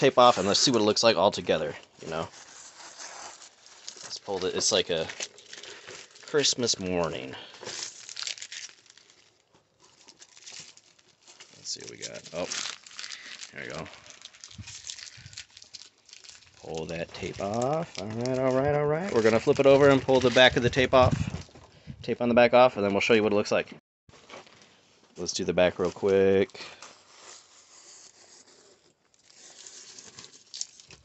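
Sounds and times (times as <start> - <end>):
tape crinkling rustle: 0.0 - 21.7, 24.1 - 31.0
tape peeling off fabric: 2.4 - 4.1, 26.9 - 31.0.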